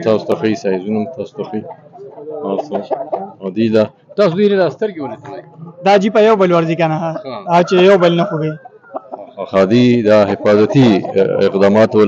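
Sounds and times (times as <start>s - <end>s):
men talking: 0.0s - 12.0s
rooster clucking: 1.4s - 3.4s, 7.1s - 11.8s.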